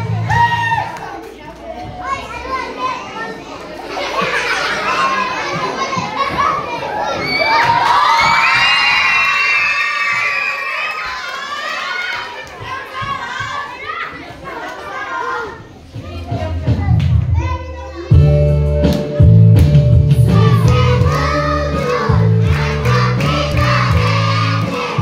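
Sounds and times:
children shouting and cheering: 0.0 - 18.6, 20.3 - 25.0.

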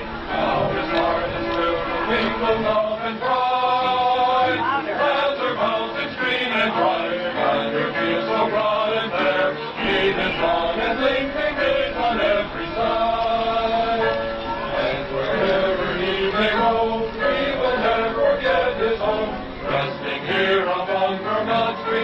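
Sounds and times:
congregation singing: 0.0 - 22.0.

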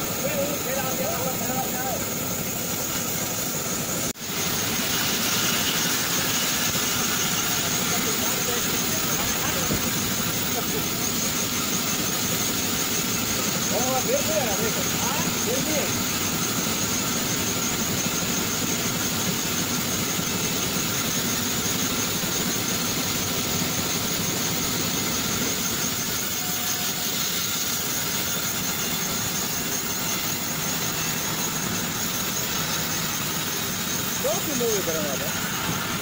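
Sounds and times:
band saw cutting wood: 4.1 - 36.0.

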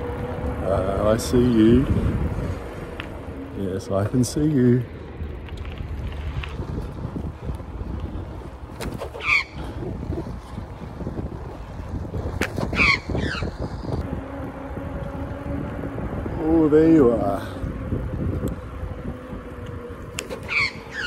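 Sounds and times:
wind and road noise rumble: 0.0 - 21.0
magpie harsh calls: 9.2 - 9.6, 12.8 - 13.5, 20.5 - 21.0.

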